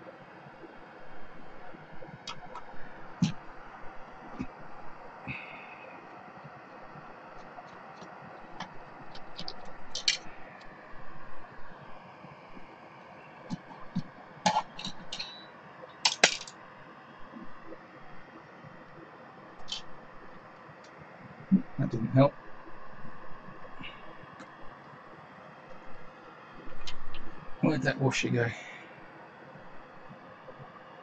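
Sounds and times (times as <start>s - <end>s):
faint steady hiss: 0.0s - 31.0s
hands handling parts clicking: 9.2s - 10.3s, 16.1s - 16.5s.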